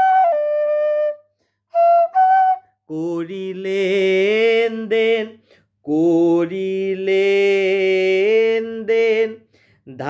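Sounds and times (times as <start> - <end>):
man singing long notes: 2.9 - 10.0.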